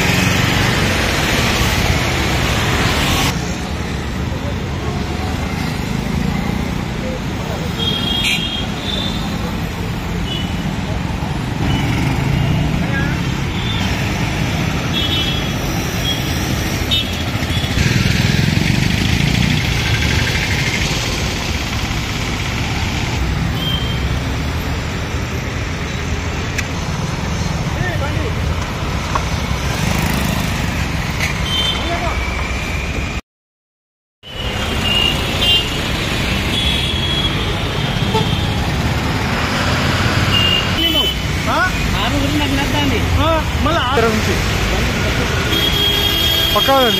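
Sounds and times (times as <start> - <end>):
engines of passing vehicles: 0.0 - 33.2, 34.2 - 46.9.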